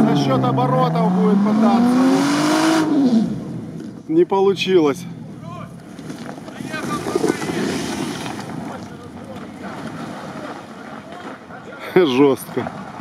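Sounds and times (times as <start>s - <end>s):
car engine revving hard: 0.0s - 3.6s
wind buffeting microphone: 5.9s - 11.8s.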